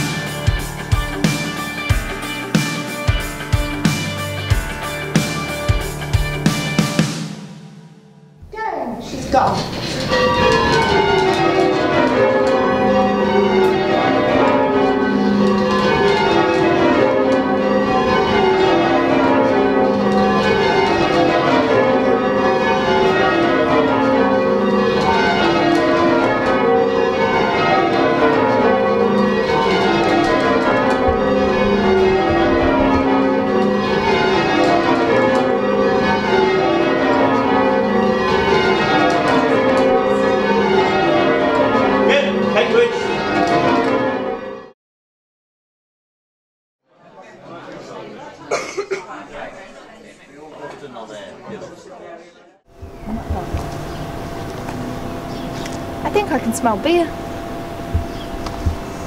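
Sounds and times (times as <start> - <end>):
church bells change ringing: 0.0 - 7.0, 8.9 - 44.8, 52.7 - 59.0.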